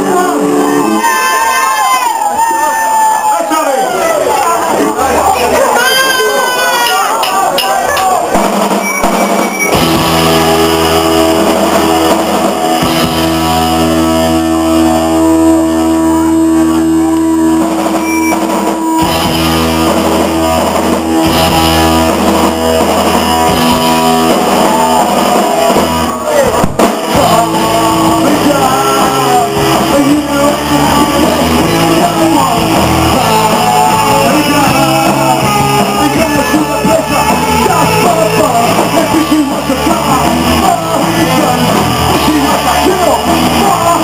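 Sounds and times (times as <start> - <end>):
voices: 0.0 - 9.7
live rock band playing: 0.0 - 44.0.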